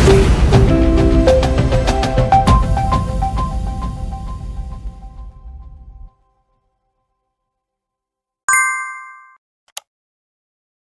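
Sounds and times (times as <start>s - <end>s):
notification bell ding: 8.5s - 9.4s.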